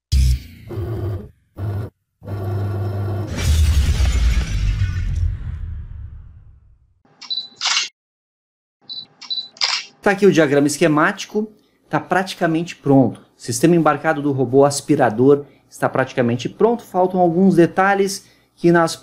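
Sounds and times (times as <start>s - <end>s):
long crash: 3.3s - 6.6s.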